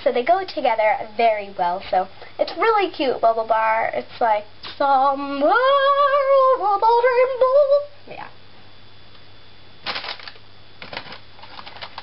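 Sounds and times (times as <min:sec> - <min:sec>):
small clicks and rustles of handling: 0:10.2 - 0:12.0.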